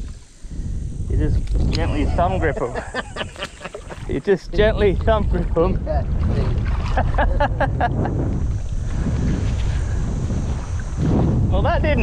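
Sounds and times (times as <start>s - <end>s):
wind buffeting microphone: 0.0s - 12.0s
bursts of laughter: 2.0s - 4.1s, 6.9s - 8.2s.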